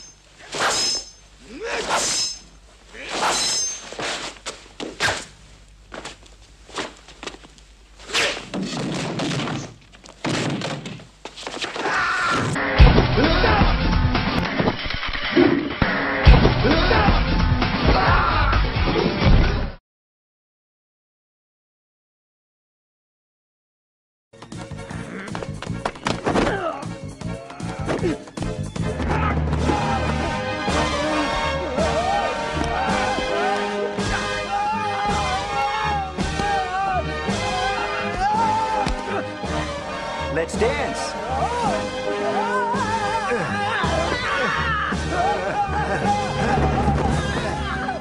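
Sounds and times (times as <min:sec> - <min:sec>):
fight thuds and blows: 0:08.2 - 0:12.0
action music with steady beat: 0:28.2 - 0:42.2.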